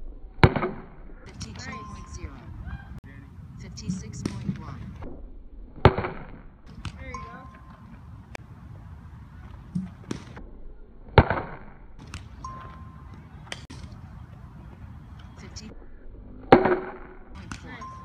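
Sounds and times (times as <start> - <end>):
bat hitting softball: 3.9 - 4.8, 5.8 - 8.0, 9.6 - 10.4, 11.1 - 14.0, 16.4 - 18.0.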